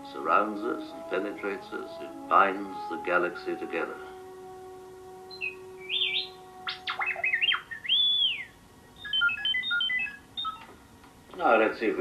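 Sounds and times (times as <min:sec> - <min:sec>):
held music notes: 0:00.0 - 0:12.0
robot beeping and whistling: 0:05.3 - 0:10.8.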